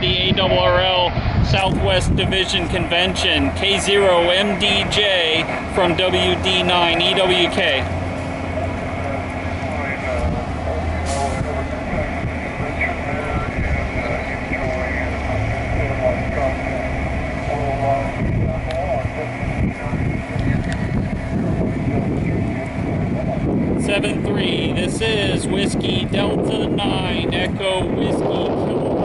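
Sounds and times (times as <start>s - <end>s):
muffled voice over radio: 0.0s - 7.9s, 8.5s - 29.0s
steady low rumble: 0.0s - 29.0s.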